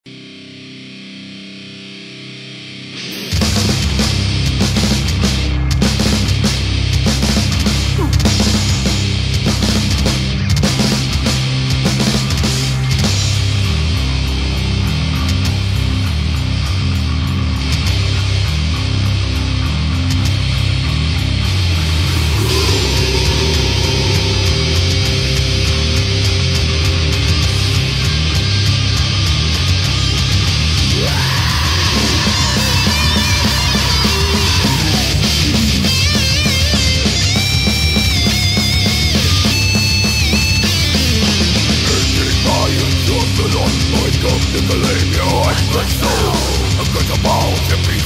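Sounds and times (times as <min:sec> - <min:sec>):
distorted electric guitar chord: 0:00.1 - 0:48.0
metal band playing: 0:00.1 - 0:48.0
sustained higher note: 0:21.8 - 0:26.5.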